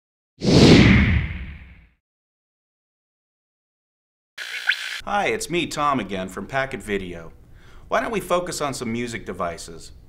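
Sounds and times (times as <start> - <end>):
whoosh: 0.4 - 1.8.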